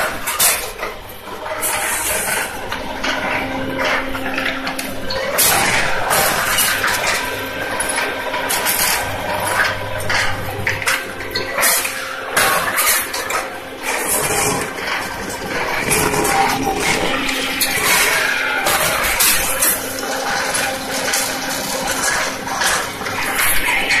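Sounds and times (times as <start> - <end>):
machine clatter: 0.0 - 24.0
machine humming: 0.0 - 24.0.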